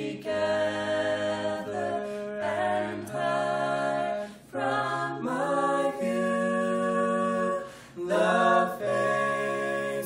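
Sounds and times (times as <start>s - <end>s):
vocal quartet singing a chord: 0.0s - 10.0s.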